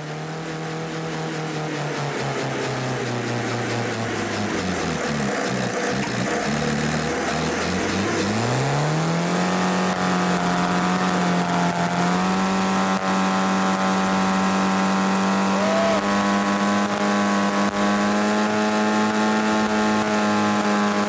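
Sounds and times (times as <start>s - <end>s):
car engine revving unevenly: 0.0s - 21.0s.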